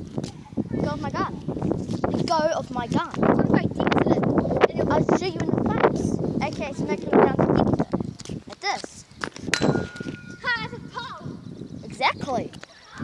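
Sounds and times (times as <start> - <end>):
child talking and vocalizing: 0.2 - 9.2, 10.3 - 13.0.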